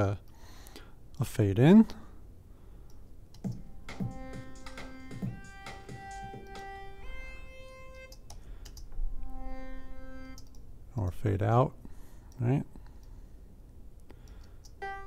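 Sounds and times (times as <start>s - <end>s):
short clicks: 10.3s - 10.7s, 14.0s - 14.8s.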